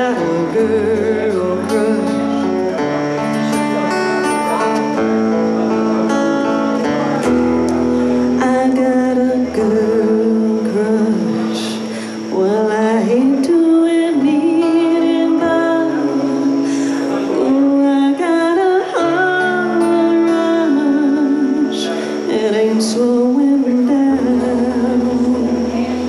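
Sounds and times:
woman singing country song: 0.0 - 4.1, 7.8 - 26.0
strummed acoustic guitar: 0.0 - 26.0.

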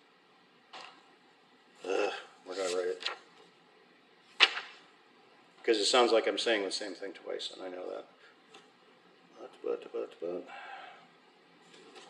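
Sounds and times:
paper page turning: 2.5 - 3.5, 4.3 - 4.9, 11.6 - 12.0.

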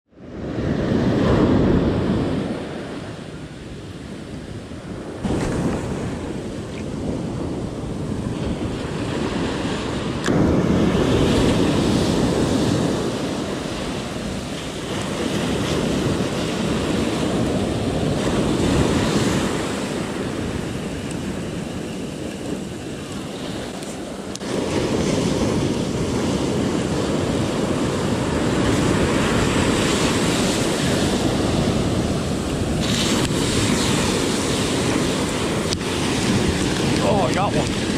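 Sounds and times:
ocean surf breaking on beach: 0.1 - 37.9
wind buffeting microphone: 0.2 - 37.9.

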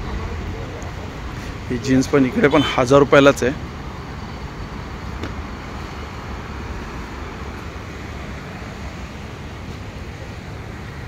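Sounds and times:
crowd background noise: 0.0 - 11.0.

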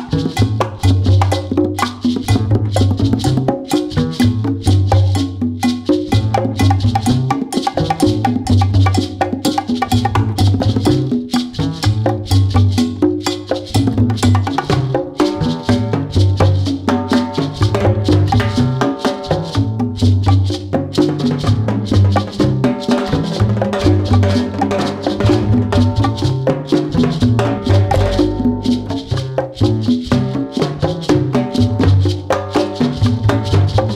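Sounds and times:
hand percussion strokes: 0.0 - 33.9
latin jazz instrumental: 0.0 - 33.9
low bass line: 19.4 - 32.3.

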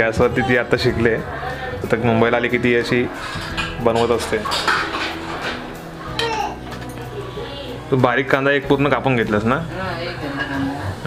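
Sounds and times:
metal utensils clinking on grate: 2.9 - 7.0.

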